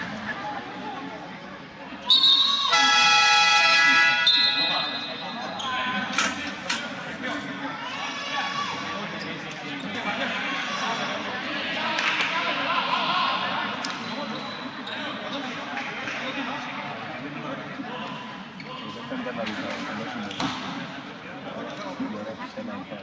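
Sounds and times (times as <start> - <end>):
voices echoing: 0.0 - 23.0
game horn buzzer tone: 2.7 - 4.2.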